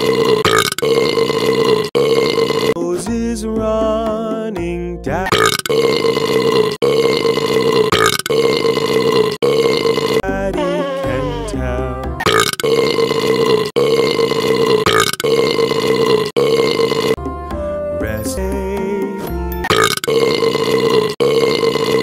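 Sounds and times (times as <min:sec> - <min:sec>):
long loud burps: 0:00.0 - 0:02.8, 0:05.3 - 0:11.6, 0:12.2 - 0:17.2, 0:19.7 - 0:22.0
backing music: 0:02.8 - 0:05.5, 0:10.2 - 0:12.3, 0:17.2 - 0:20.0.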